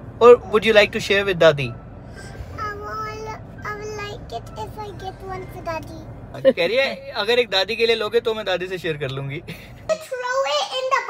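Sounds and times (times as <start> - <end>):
faint low car hum: 0.0 - 11.0.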